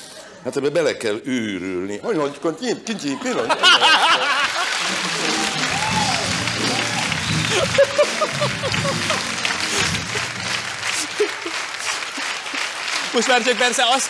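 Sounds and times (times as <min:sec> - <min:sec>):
studio audience applauding: 0:03.6 - 0:14.0
music playing: 0:04.6 - 0:13.2.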